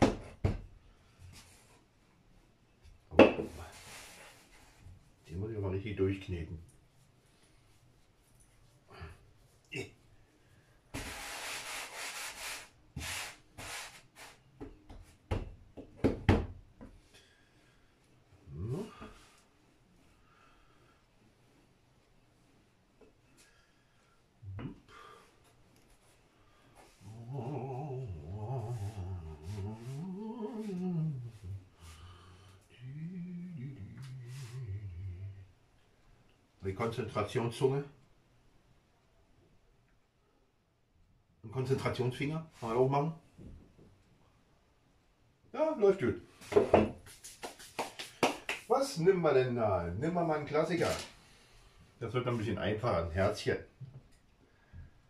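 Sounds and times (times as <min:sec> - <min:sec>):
hands rubbing dough: 0:03.5 - 0:05.2, 0:10.9 - 0:15.3, 0:46.4 - 0:49.0
man humming: 0:18.5 - 0:19.1, 0:24.4 - 0:24.8, 0:27.0 - 0:35.5.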